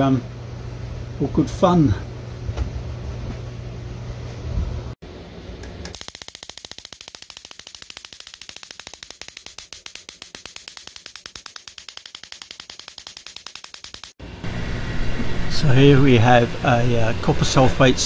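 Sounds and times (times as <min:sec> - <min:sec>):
electric spark snapping: 0:05.7 - 0:14.2.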